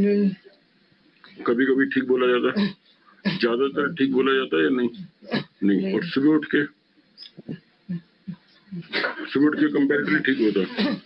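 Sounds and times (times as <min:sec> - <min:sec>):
man making faint vocal sounds: 0:03.4 - 0:06.6, 0:08.8 - 0:11.0.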